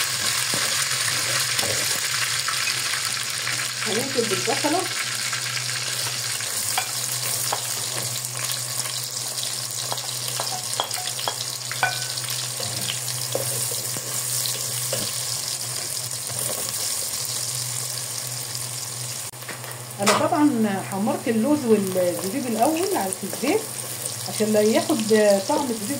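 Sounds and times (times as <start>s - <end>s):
onions sizzling in hot oil: 0.0s - 25.9s.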